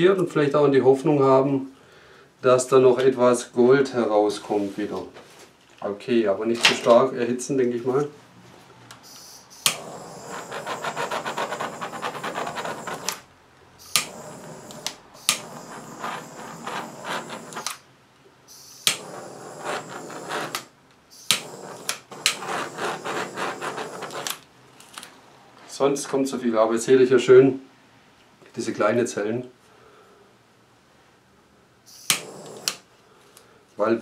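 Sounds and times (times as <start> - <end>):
heat gun blowing air: 9.0 - 17.8, 18.5 - 24.4, 31.9 - 32.9
heat gun switch click: 9.6 - 9.8, 13.9 - 15.5, 18.8 - 19.1, 21.2 - 22.4, 32.0 - 32.8.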